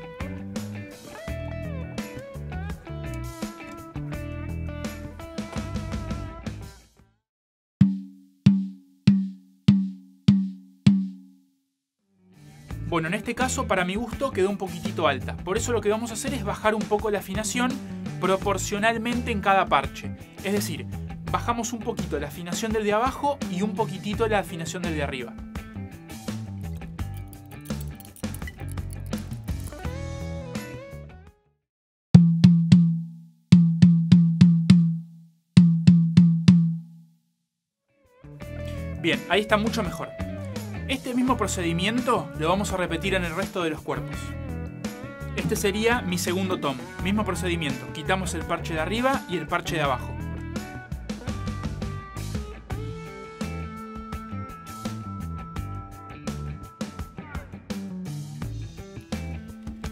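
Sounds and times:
background music: 0.0s - 6.9s, 12.3s - 31.4s, 38.1s - 59.9s
tom drum struck with stick: 7.8s - 11.3s, 32.2s - 35.0s, 35.6s - 36.8s.

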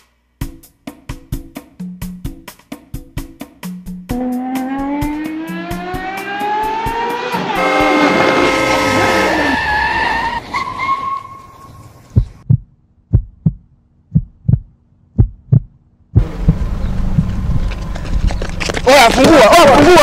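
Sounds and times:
heartbeat thumps: 12.1s - 18.3s.

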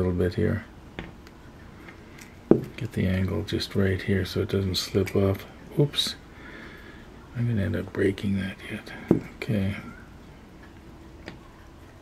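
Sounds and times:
quiet handling: 0.0s - 6.3s, 7.1s - 12.0s.

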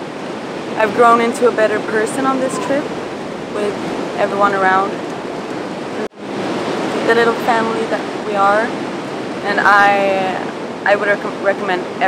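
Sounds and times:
ocean surf breaking on beach: 0.0s - 12.0s.

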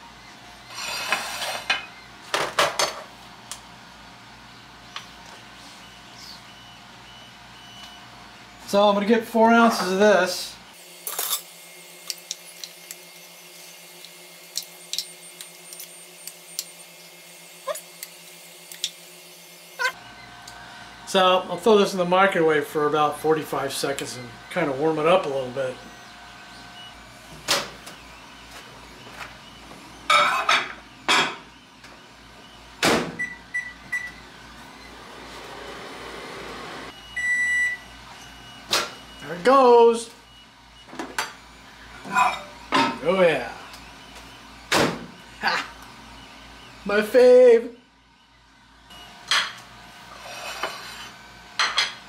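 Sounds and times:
microwave running hum: 0.0s - 52.0s
keypad beeps: 33.2s - 34.2s.

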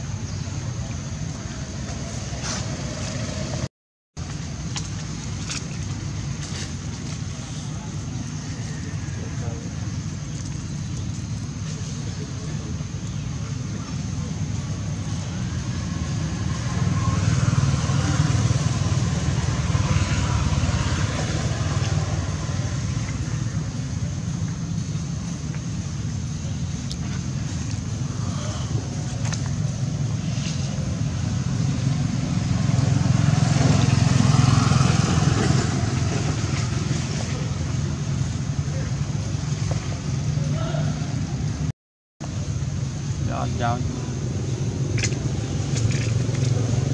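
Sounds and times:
low rumble of motor traffic: 0.0s - 46.9s.

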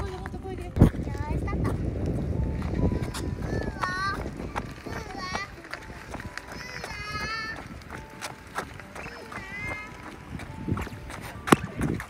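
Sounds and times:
running footsteps on asphalt: 0.0s - 12.0s.

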